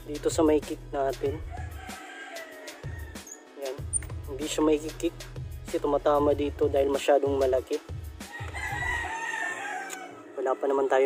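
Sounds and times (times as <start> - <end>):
rooster crowing: 1.5 - 3.4, 8.2 - 11.0.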